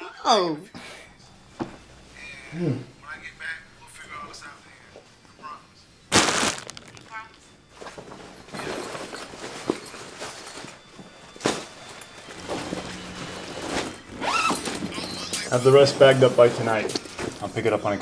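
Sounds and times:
faint background music: 0.0s - 18.0s
bag rustling: 6.1s - 7.2s.

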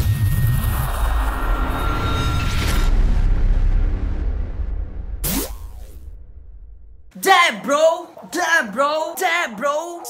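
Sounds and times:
whoosh: 0.0s - 7.0s.

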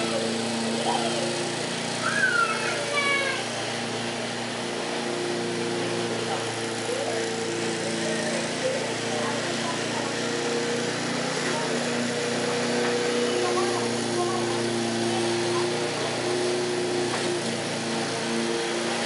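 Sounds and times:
lawn mower running: 0.0s - 19.0s.

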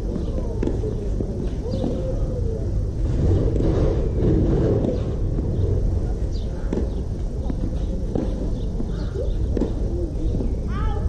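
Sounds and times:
faint distant voices: 0.0s - 11.0s
steady low rumble: 0.0s - 11.0s.

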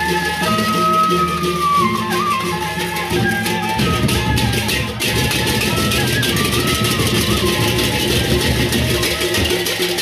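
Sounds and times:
hand cymbals clashing: 0.0s - 10.0s
low drums: 0.0s - 10.0s.

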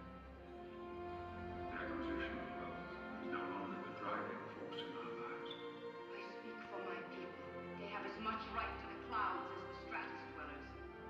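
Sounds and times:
orchestra sustained chords: 0.0s - 11.0s.

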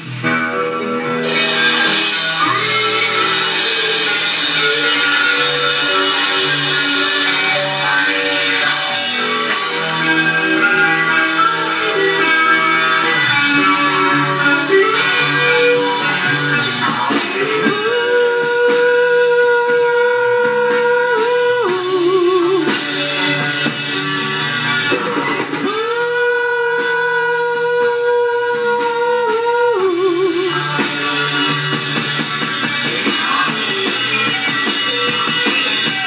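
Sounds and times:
held guitar lead note: 0.0s - 26.9s
rock band playing slow song: 0.0s - 36.0s.

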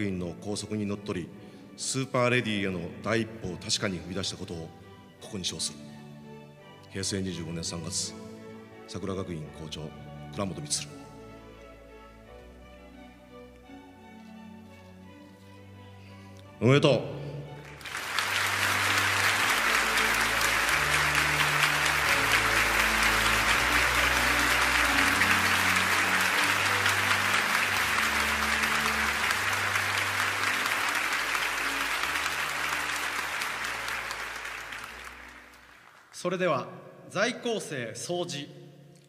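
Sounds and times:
soft background music: 0.0s - 39.0s
audience applauding: 17.6s - 36.2s.

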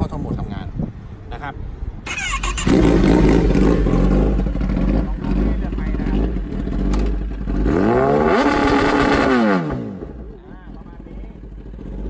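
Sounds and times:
electric starter cranking: 2.1s - 3.3s
motorcycle engine running loudly: 2.6s - 12.0s.

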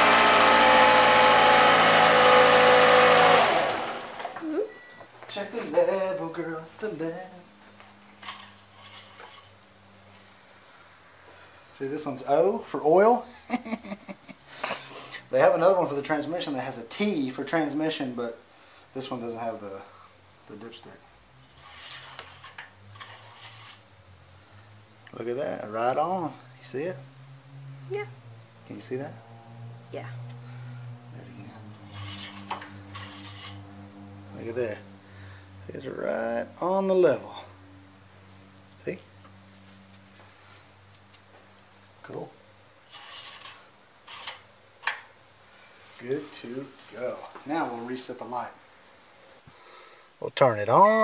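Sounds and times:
cloth rag rubbing metal dipstick: 31.8s - 33.7s.

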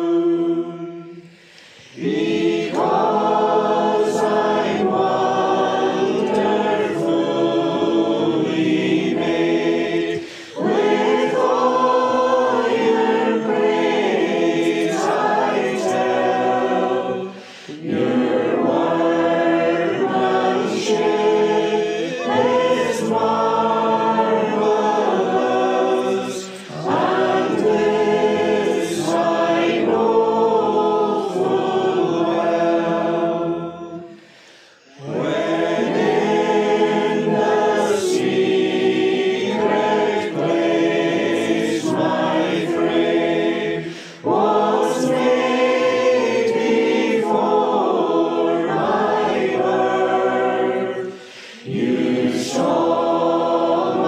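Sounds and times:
congregation singing a psalm: 0.0s - 54.0s.

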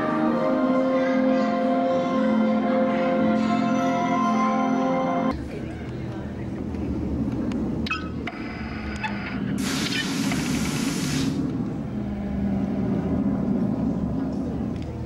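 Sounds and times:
chiming music: 0.0s - 5.3s
hiss of released air: 9.6s - 11.5s
faint murmur: 11.5s - 15.0s.

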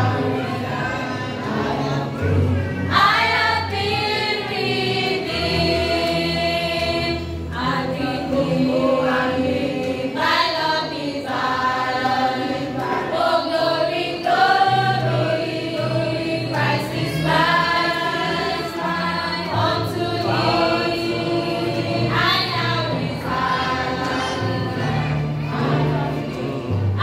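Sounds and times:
youth choir singing: 0.0s - 27.0s.

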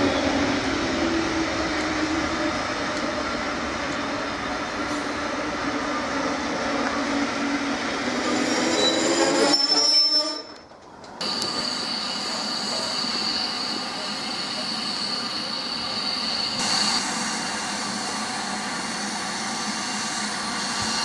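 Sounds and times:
train brakes squealing: 7.2s - 10.6s, 11.2s - 21.0s
thin high squeal: 8.2s - 10.5s.

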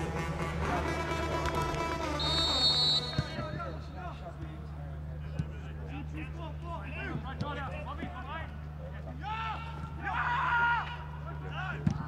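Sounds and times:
background music: 0.0s - 3.1s
referee's whistle long blast: 2.2s - 3.4s.

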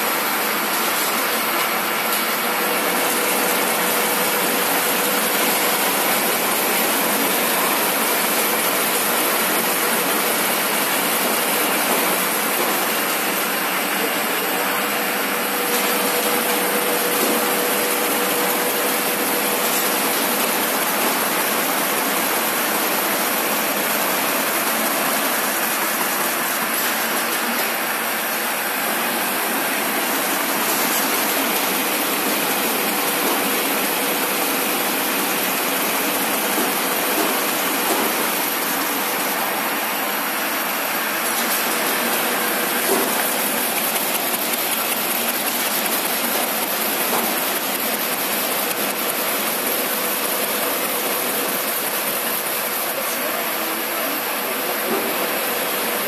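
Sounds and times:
machine running: 0.1s - 56.0s.

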